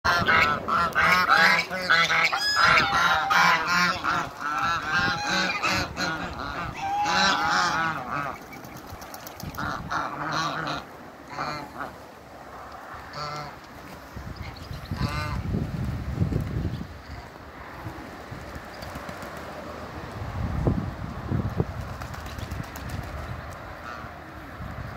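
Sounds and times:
geese honking: 0:00.1 - 0:08.5, 0:09.6 - 0:12.0, 0:13.1 - 0:13.6, 0:23.8 - 0:24.1.

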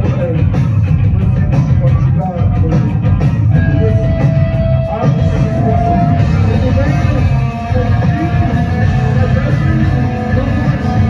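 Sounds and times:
distorted bass and guitar: 0:00.0 - 0:11.0
steady drum beat: 0:00.0 - 0:11.0.

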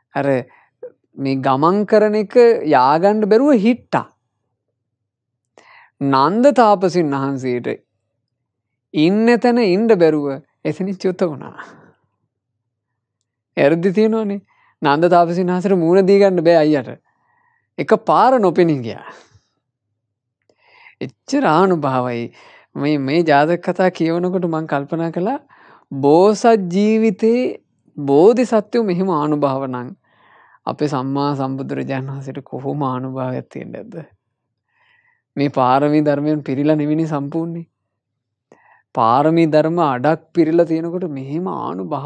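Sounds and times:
man preaching: 0:00.0 - 0:04.1, 0:09.0 - 0:11.8, 0:13.6 - 0:17.0, 0:17.8 - 0:19.3, 0:20.8 - 0:30.0, 0:30.6 - 0:34.1, 0:39.0 - 0:42.0
man speaking: 0:00.1 - 0:04.2, 0:09.0 - 0:11.9, 0:13.6 - 0:17.0, 0:17.8 - 0:19.4, 0:20.8 - 0:30.0, 0:30.6 - 0:34.1, 0:35.4 - 0:37.7, 0:38.9 - 0:42.0.

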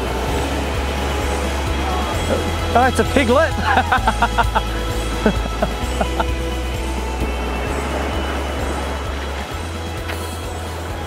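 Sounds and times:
low bass background music: 0:00.0 - 0:11.0.

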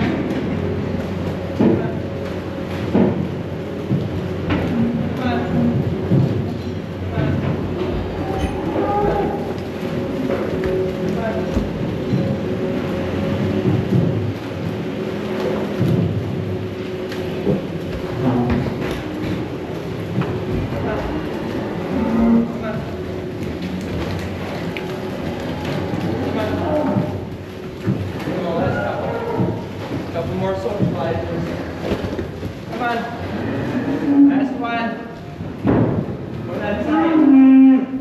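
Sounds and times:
cattle shuffling in a pen: 0:00.0 - 0:36.2
barn ventilation fans humming: 0:00.0 - 0:38.0.

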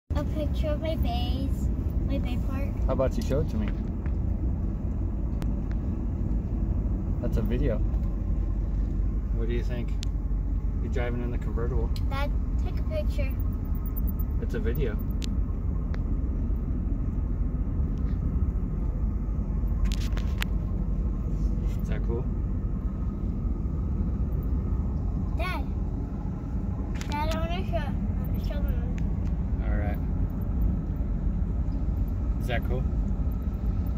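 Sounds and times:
wind and road noise: 0:00.1 - 0:33.9.

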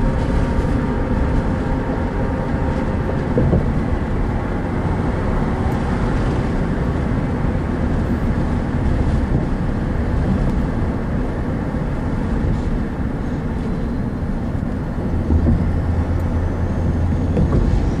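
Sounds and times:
car driving on road: 0:00.0 - 0:18.0.

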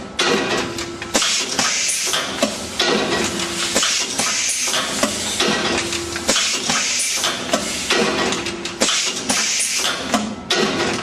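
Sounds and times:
mechanical clicks and knocks: 0:00.2 - 0:11.0.

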